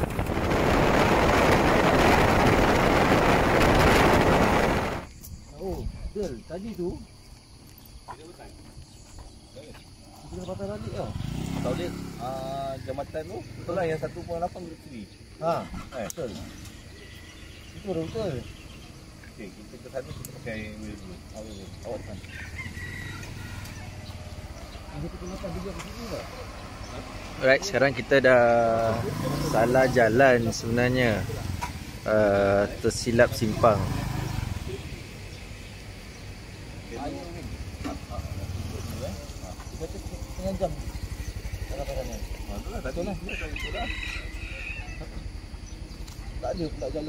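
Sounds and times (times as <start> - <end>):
rooster crowing: 22.2 - 24.4, 43.1 - 45.4.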